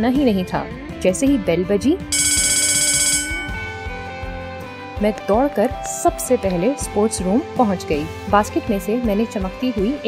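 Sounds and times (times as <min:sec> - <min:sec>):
soft background music: 0:00.0 - 0:10.0
school bell ringing: 0:02.2 - 0:03.8.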